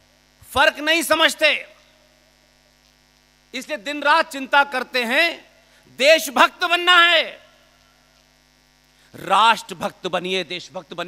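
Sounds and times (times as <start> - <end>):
faint electrical hum: 0.0 - 11.0
man's amplified voice: 0.4 - 2.0, 3.5 - 7.7, 9.1 - 11.0.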